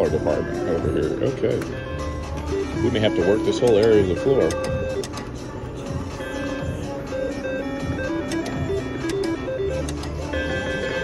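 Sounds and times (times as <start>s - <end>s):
casino tones and music: 0.0s - 11.0s
slot machine electronic notes: 2.5s - 11.0s
sharp clicks: 8.2s - 10.2s.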